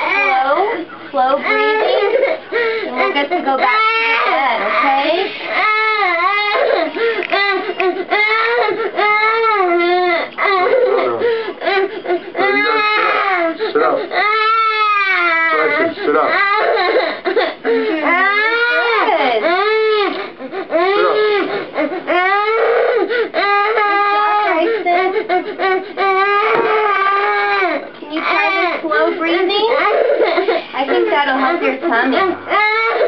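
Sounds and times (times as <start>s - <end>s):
young boy crying: 0.0s - 33.0s.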